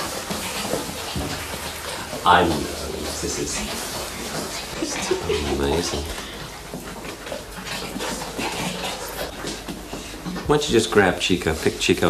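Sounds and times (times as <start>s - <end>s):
puppies scuffling on floor: 0.0s - 12.0s
puppies vocalizing: 0.0s - 12.0s.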